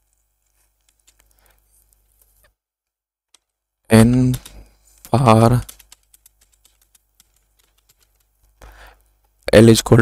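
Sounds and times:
computer keyboard typing: 0.8 - 1.3, 3.3 - 8.7.

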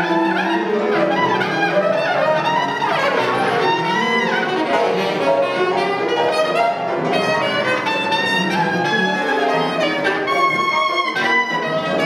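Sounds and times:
piano playing low notes: 0.0 - 12.0.

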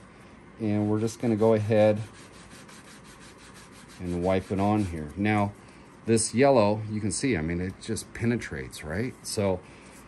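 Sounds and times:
cloth rubbing on plastic: 1.2 - 5.6.

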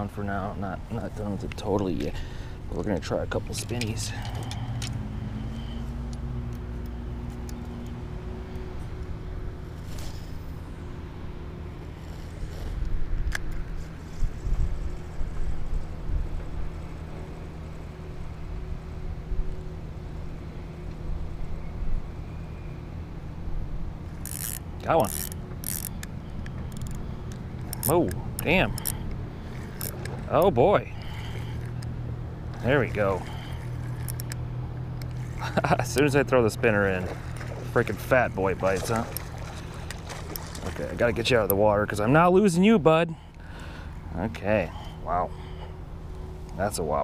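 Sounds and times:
fishing reel gears whirring: 3.4 - 8.8, 24.0 - 42.3.

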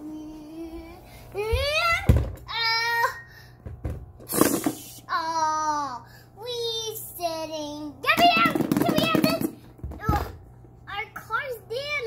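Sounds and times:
plastic toys knocking on carpet: 8.1 - 10.3.

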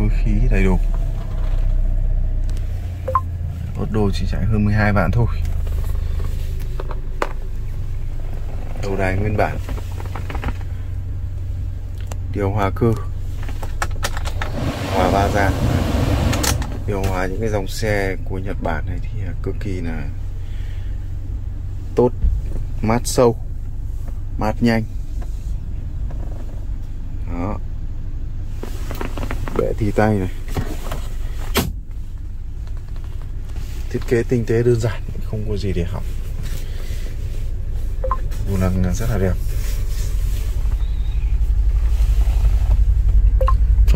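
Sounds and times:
low engine hum: 0.0 - 43.9
low rumble inside car: 0.0 - 43.9
blower fan air rush: 14.4 - 17.5, 39.1 - 43.9.

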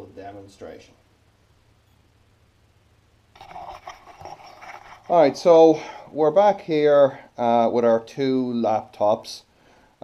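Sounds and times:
camera handling rustling and scraping: 3.4 - 5.1.

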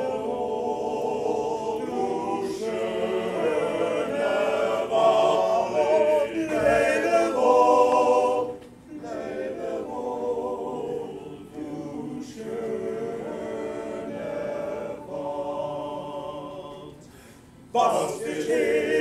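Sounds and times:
men's chorus singing a cappella: 0.0 - 19.0.

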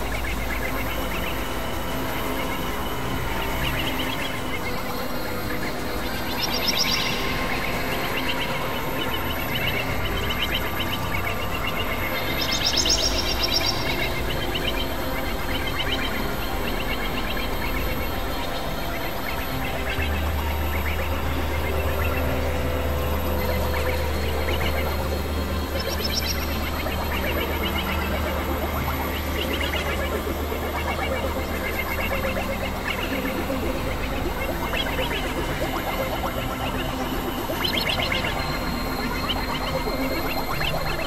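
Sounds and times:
synthesizer drones: 0.0 - 41.0.

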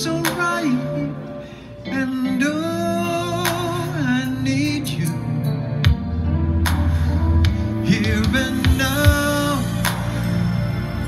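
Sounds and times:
instrumental accompaniment: 0.0 - 11.0
man singing soul ballad: 0.0 - 11.0.

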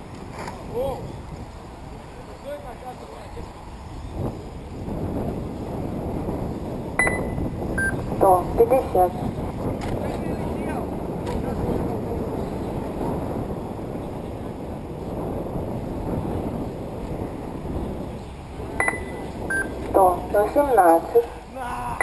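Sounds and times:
wind buffeting microphone: 0.0 - 22.0
short high beep: 7.0 - 9.0, 18.8 - 21.3.

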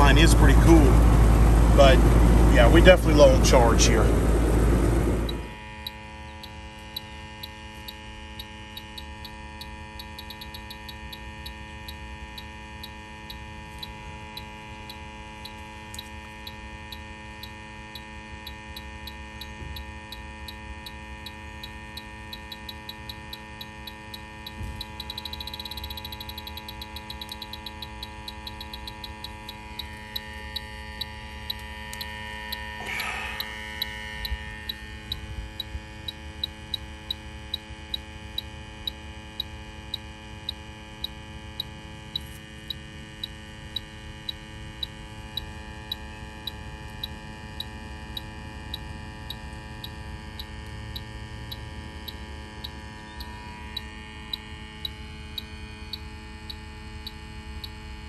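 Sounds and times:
leak detector ticking: 0.0 - 58.0
steady hum: 0.0 - 58.0.

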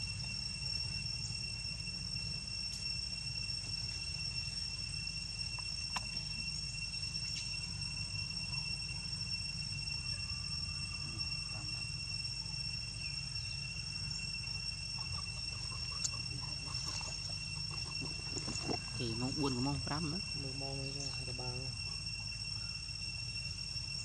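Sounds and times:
faint insect chirps: 0.0 - 24.0
insect chorus drone: 0.0 - 24.0
low hum: 0.0 - 24.0.

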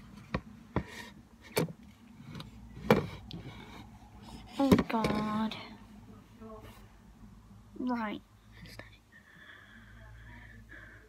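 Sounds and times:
low room noise: 0.0 - 11.0.

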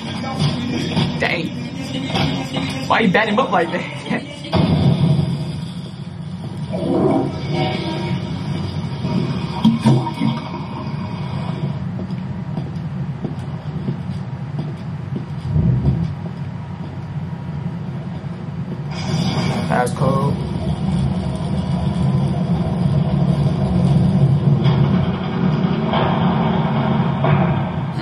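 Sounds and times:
low mechanical rumble: 0.0 - 28.0
heavy thud: 11.7 - 16.4.

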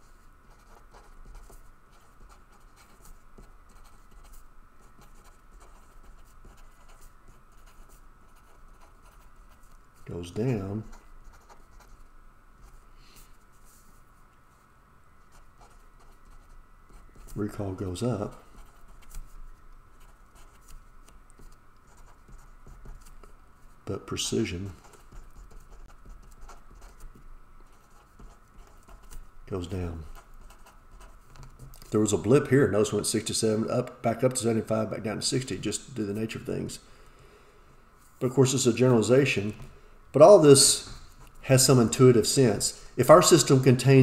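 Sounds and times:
marker pen scratching on paper: 0.0 - 9.8, 10.8 - 12.8, 15.3 - 17.5, 18.2 - 32.0.

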